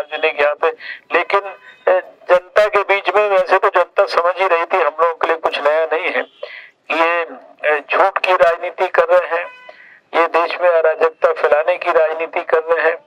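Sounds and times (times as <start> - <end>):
man speaking into a microphone: 0.0 - 13.0.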